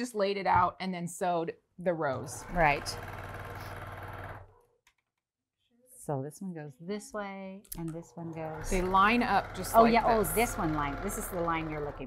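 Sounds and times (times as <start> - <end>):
sewing machine stitching: 2.1 - 4.7, 8.4 - 12.0.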